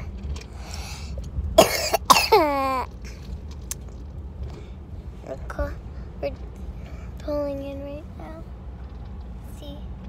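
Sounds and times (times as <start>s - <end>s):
road rumble inside car: 0.0s - 10.0s
person coughing: 1.6s - 2.6s.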